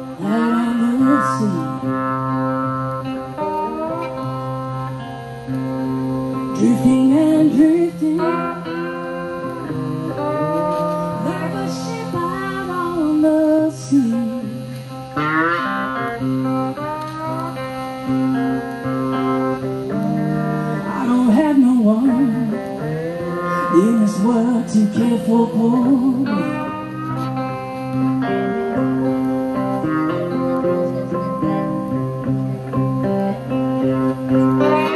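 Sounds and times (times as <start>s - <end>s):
blues guitars through an amp: 0.0s - 34.9s
woman singing: 0.1s - 2.5s, 6.4s - 15.1s, 20.7s - 27.1s.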